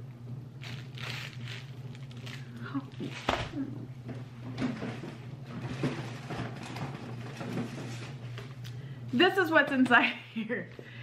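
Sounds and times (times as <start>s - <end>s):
tissue paper rustling: 0.6s - 3.5s.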